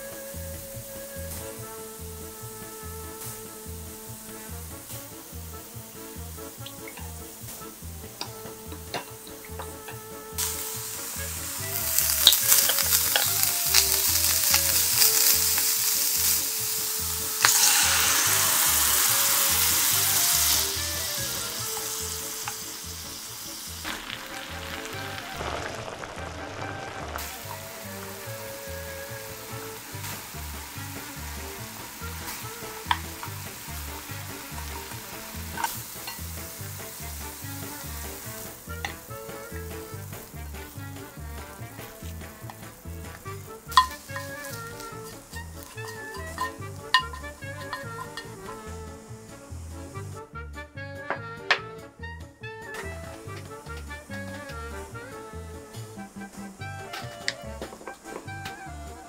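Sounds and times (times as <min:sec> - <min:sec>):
food sizzling in a hot pan: 0:00.0 - 0:50.3, 0:52.6 - 0:59.0
stirring in a pan: 0:05.9 - 0:26.3, 0:27.0 - 0:48.8.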